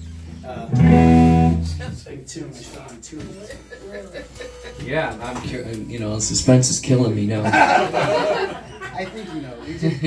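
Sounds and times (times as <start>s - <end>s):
murmured talk: 0.3s - 10.0s
amplified guitar chord ringing: 0.4s - 1.8s.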